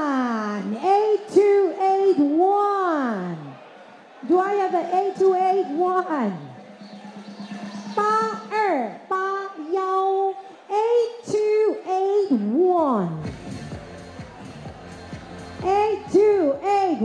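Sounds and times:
background music: 0:03.5 - 0:10.7, 0:12.2 - 0:17.0.

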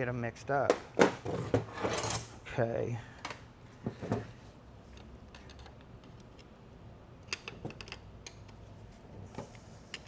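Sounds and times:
shop room tone: 0:00.0 - 0:10.0
tools knocking and clicking: 0:07.2 - 0:08.6.

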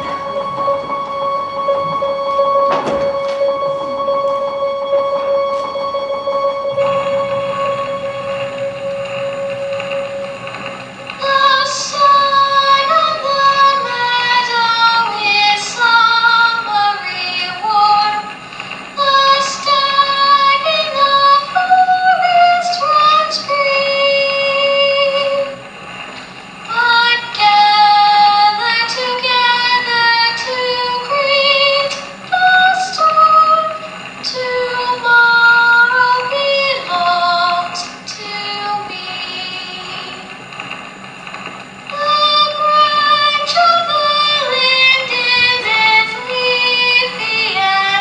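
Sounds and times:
high voice singing: 0:00.0 - 0:25.7, 0:26.7 - 0:40.4, 0:41.9 - 0:48.0
faint accompaniment: 0:00.0 - 0:48.0
music: 0:00.0 - 0:48.0.

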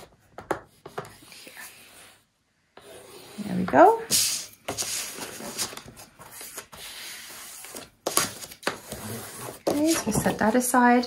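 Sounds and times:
paper rustling and rubbing: 0:02.9 - 0:10.5.

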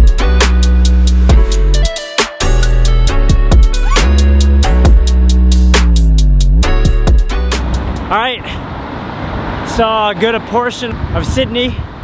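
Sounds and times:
road traffic passing on a bridge: 0:04.1 - 0:12.0.

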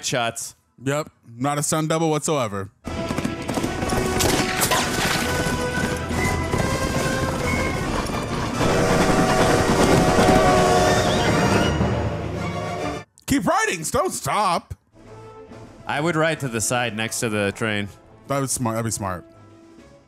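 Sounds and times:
film music score: 0:00.0 - 0:20.0
horse hoofbeats galloping: 0:02.8 - 0:11.7.

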